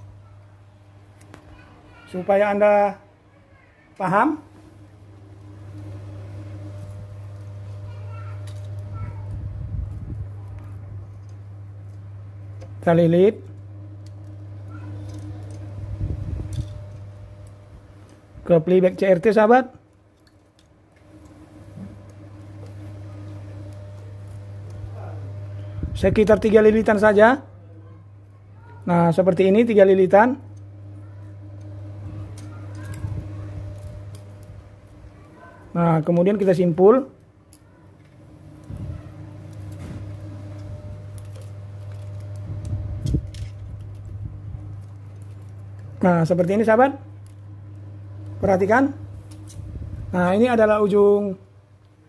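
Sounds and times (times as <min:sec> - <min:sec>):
wire rustling: 0:03.9 - 0:27.3, 0:28.0 - 0:52.0
low hum: 0:04.0 - 0:19.0, 0:19.8 - 0:52.0
small clicks: 0:30.5 - 0:35.0.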